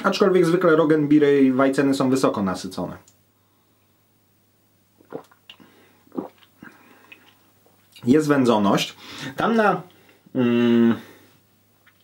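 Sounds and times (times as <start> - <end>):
man gulping beer: 5.0 - 7.5
faint mouth sounds: 5.0 - 8.0.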